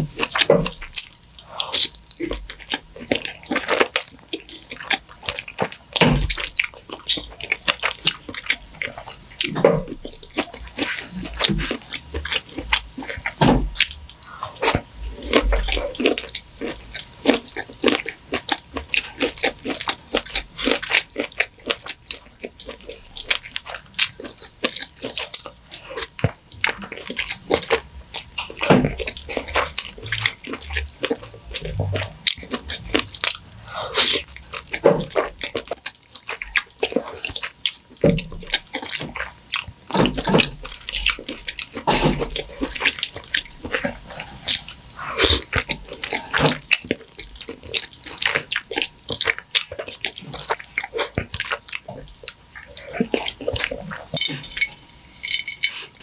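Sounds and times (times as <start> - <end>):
wet chewing and slurping: 0.0 - 56.0
sticky mouth clicks and smacks: 0.1 - 55.9.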